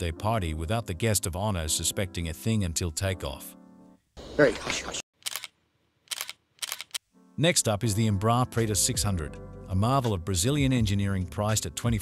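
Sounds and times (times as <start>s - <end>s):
camera shutter clicks: 5.2s - 7.0s.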